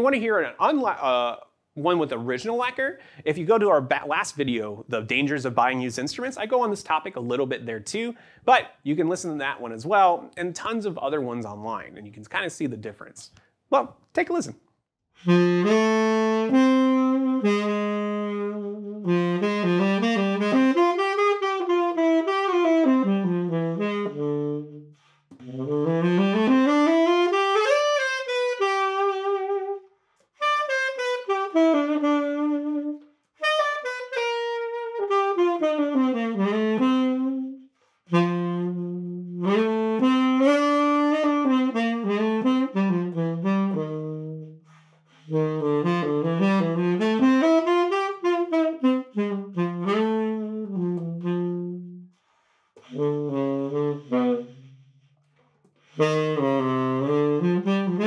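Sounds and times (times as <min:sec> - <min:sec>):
solo tenor saxophone: 0:15.2 - 0:58.0.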